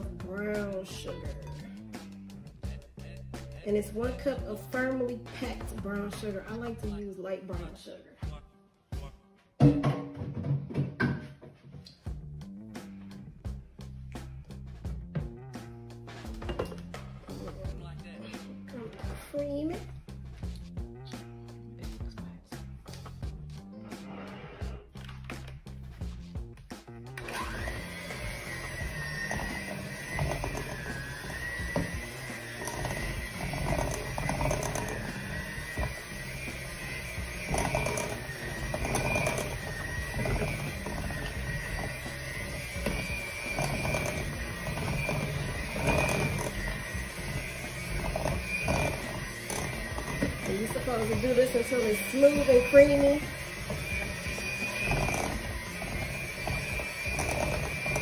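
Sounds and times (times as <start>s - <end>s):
background music: 0.0s - 58.0s
beaters scraping thick mixture: 3.4s - 7.1s, 27.1s - 58.0s
electric hand mixer whining: 3.8s - 7.0s, 27.1s - 58.0s.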